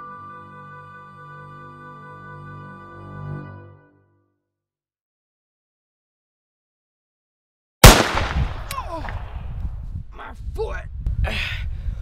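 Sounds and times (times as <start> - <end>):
loud gunshot: 7.8 - 9.4
wind rumble on microphone: 8.1 - 12.0.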